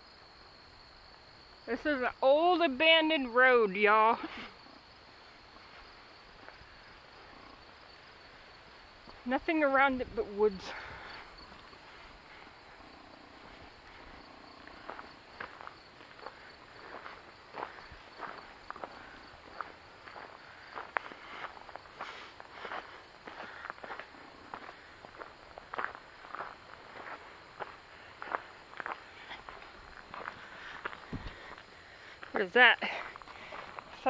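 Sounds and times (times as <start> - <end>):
footsteps on gravel: 13.4 - 34.0.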